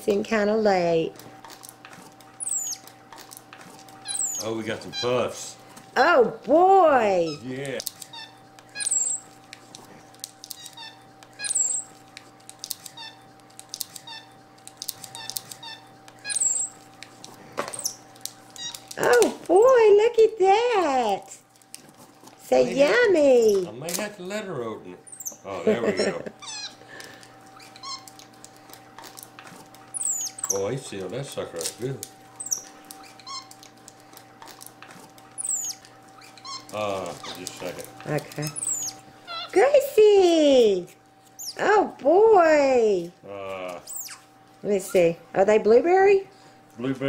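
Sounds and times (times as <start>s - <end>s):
faint steady hum: 0.0s - 47.0s
snack package rustling: 1.1s - 5.9s, 7.4s - 19.6s, 21.4s - 24.2s, 27.0s - 39.2s
monkey squeaking: 2.2s - 5.5s, 6.9s - 9.5s, 10.3s - 17.0s, 17.7s - 19.6s, 22.5s - 23.7s, 25.0s - 26.8s, 27.4s - 30.7s, 32.3s - 33.9s, 34.5s - 39.7s, 41.3s - 41.7s, 43.8s - 45.1s
monkey chirps dropping in pitch: 2.4s - 2.8s, 4.1s - 5.1s, 8.1s - 9.3s, 10.5s - 12.0s, 15.2s - 16.8s, 25.1s - 25.4s, 30.0s - 30.6s, 32.4s - 33.5s, 35.4s - 35.8s, 38.4s - 39.5s, 43.9s - 44.2s.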